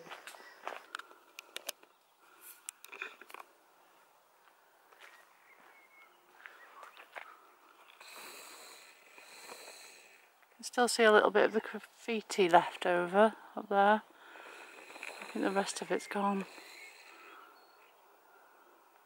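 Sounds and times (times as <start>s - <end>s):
faint footsteps on path: 0.0s - 8.5s.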